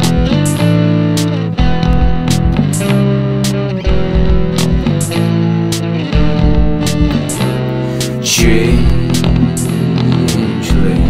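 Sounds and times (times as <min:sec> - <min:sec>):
bass guitar: 0:00.0 - 0:11.0
electric guitar chords: 0:00.0 - 0:11.0
drum strikes: 0:01.6 - 0:05.2, 0:06.2 - 0:07.6, 0:08.3 - 0:09.8.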